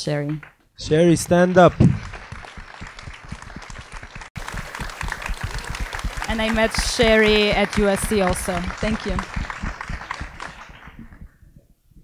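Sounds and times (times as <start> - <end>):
audience applause: 1.3 - 11.4.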